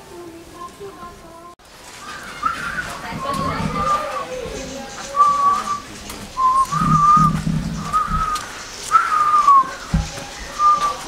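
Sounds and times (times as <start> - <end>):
person whistling a tune: 8.0 - 9.7.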